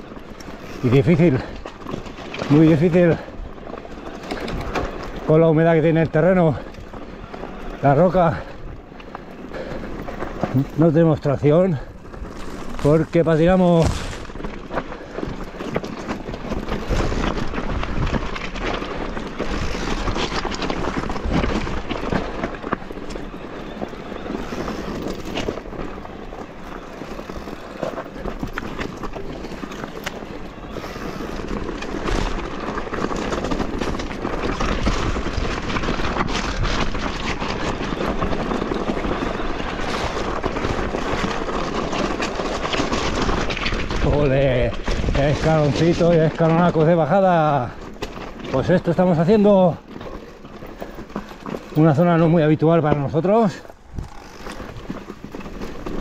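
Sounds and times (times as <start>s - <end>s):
bike rattling and knocking: 0.0s - 56.0s
tyres crunching over stones: 0.0s - 56.0s.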